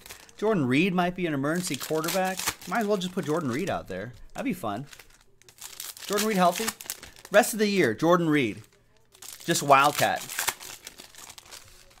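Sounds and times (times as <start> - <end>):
foil wrapper crinkling: 0.0 - 0.4, 1.5 - 12.0.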